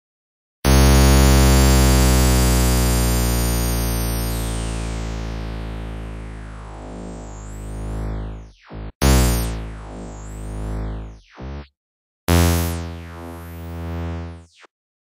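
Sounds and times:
synthesizer low note sweeping down: 0.7s - 11.7s, 12.3s - 14.7s.

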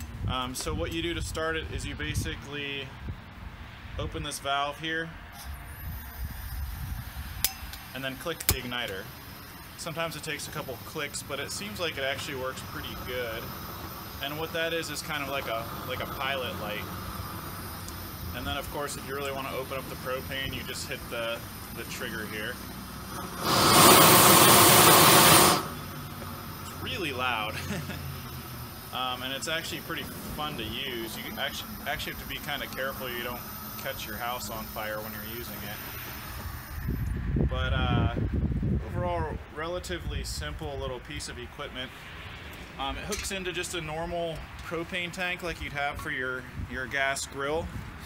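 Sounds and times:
propane torch flame blasting: 5.4s - 37.6s
torch igniter click: 23.1s - 25.8s.

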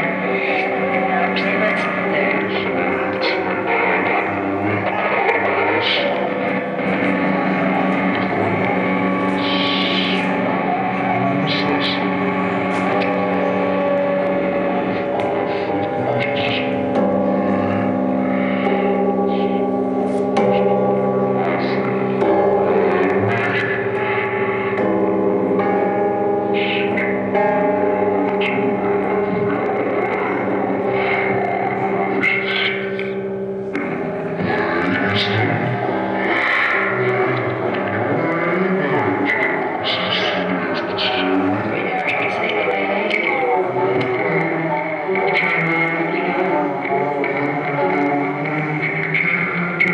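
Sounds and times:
distorted electric guitar drone: 0.0s - 49.9s.

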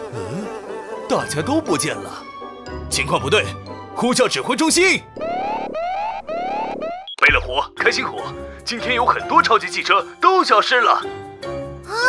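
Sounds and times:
cartoon electronic alarm: 5.2s - 7.5s.

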